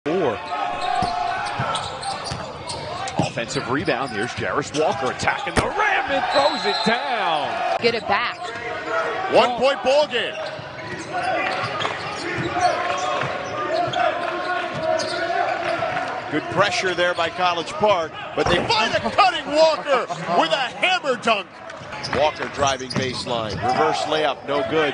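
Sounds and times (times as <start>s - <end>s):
players calling out: 0.1s - 24.9s.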